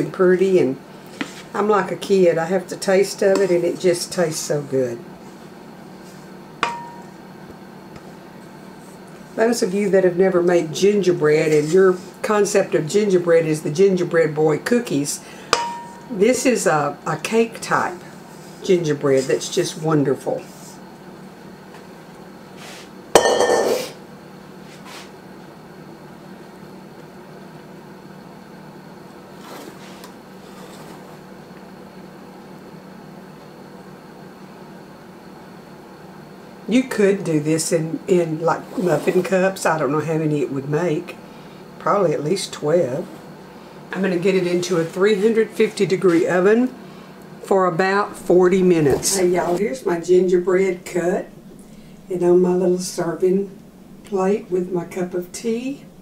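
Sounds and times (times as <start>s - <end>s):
steady low hum: 0.0s - 56.0s
utensil clinking against bowl: 15.6s - 16.1s, 23.2s - 23.9s.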